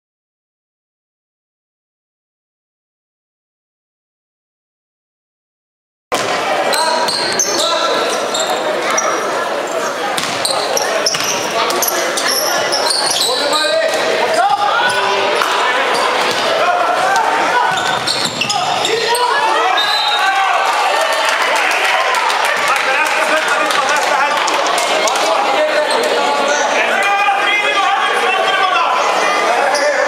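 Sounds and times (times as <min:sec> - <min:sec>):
sneakers squeaking: 0:06.2 - 0:20.2
people calling out: 0:06.6 - 0:23.1.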